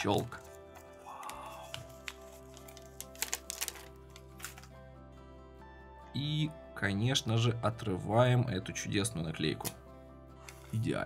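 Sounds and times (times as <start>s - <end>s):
plastic film crackling: 0.0s - 4.8s
background music: 0.0s - 11.0s.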